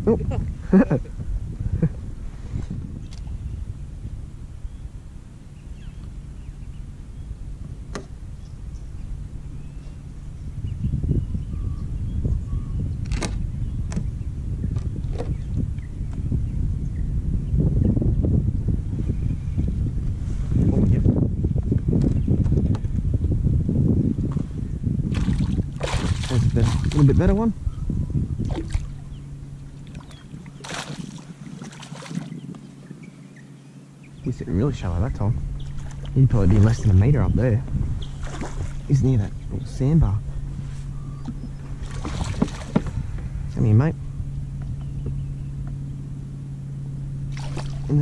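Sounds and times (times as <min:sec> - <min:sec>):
wind on microphone: 0:00.0 - 0:48.0
fish splashing: 0:25.1 - 0:27.0, 0:29.8 - 0:32.4, 0:41.3 - 0:43.1, 0:47.3 - 0:47.9
water sloshing against kayak: 0:25.1 - 0:27.4, 0:28.3 - 0:33.2, 0:35.4 - 0:39.6, 0:40.2 - 0:43.6, 0:47.3 - 0:48.0.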